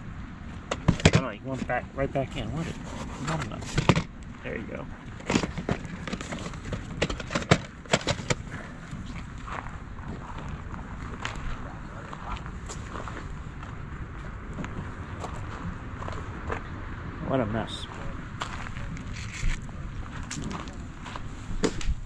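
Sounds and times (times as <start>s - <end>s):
outdoor background noise: 0.0s - 22.0s
plastic tape cases clacking: 5.2s - 8.5s.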